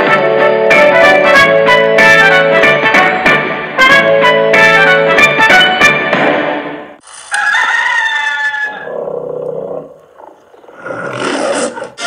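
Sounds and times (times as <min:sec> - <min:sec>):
music: 0:00.0 - 0:07.0.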